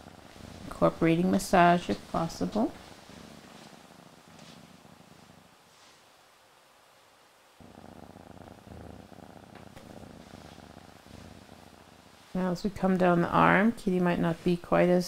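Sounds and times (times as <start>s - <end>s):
cat purring: 0.0s - 15.0s.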